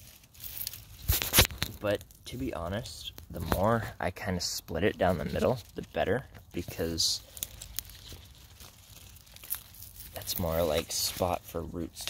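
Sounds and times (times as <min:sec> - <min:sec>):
small crackles of plant stem: 0:00.0 - 0:03.8, 0:05.0 - 0:12.0
plant leaves rustling: 0:00.0 - 0:12.0.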